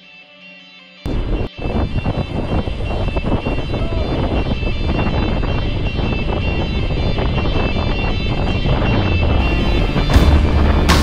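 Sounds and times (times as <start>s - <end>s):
wind buffeting microphone: 1.1s - 11.0s.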